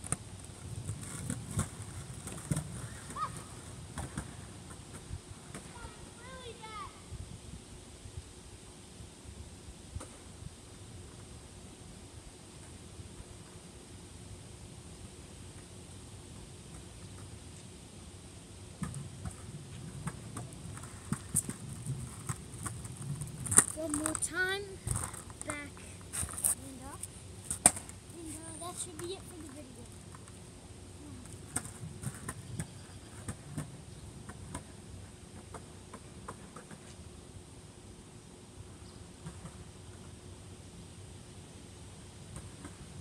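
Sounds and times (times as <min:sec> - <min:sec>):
skateboard wheels rolling on pavement: 0:00.0 - 0:06.6, 0:18.6 - 0:30.6, 0:31.2 - 0:37.3
skateboard clacks: 0:18.8 - 0:24.2.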